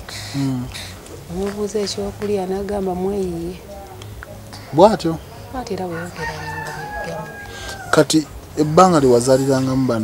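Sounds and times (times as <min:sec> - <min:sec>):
rooster crowing: 0:05.9 - 0:08.2.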